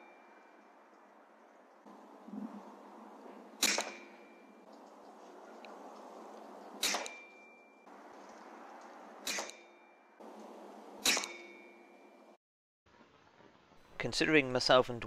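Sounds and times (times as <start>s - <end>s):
air rifle shots: 3.6s - 4.2s, 6.8s - 7.3s, 9.2s - 9.7s, 11.0s - 11.6s.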